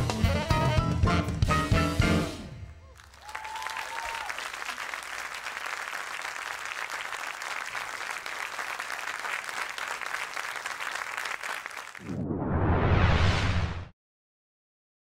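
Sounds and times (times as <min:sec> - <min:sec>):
smooth jazz music: 0:00.0 - 0:02.6
audience applauding: 0:02.9 - 0:12.1.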